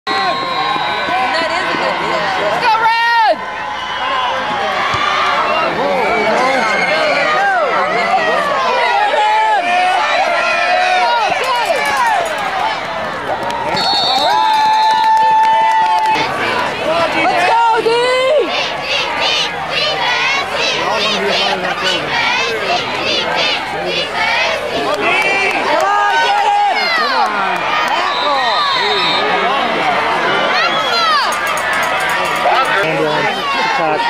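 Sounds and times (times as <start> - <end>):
crowd shouting and cheering: 0.0 - 34.0.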